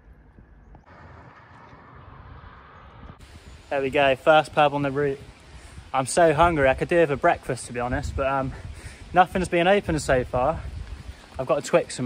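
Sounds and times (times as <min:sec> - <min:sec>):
low rumble of wind on microphone: 0:00.0 - 0:11.5
background hiss: 0:03.2 - 0:12.0.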